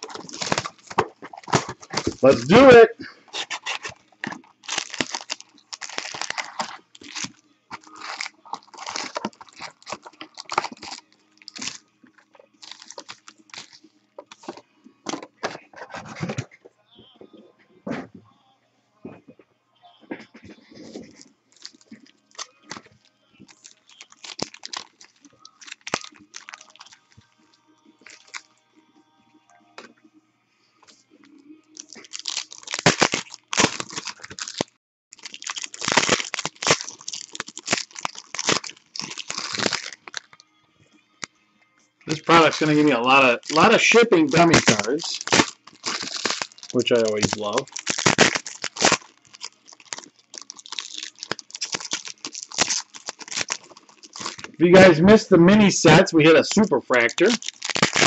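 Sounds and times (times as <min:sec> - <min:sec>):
foil packs rustling: 0:00.0 - 0:11.8, 0:12.6 - 0:16.5, 0:20.6 - 0:27.2, 0:28.0 - 0:28.4, 0:31.8 - 0:40.4, 0:42.1 - 0:54.9, 0:55.9 - 0:58.0
shrink-wrap tearing and crinkling: 0:00.0 - 0:11.8, 0:12.6 - 0:14.6, 0:20.8 - 0:27.2, 0:28.0 - 0:28.5, 0:31.8 - 0:40.4, 0:42.1 - 0:54.9, 0:56.6 - 0:58.0.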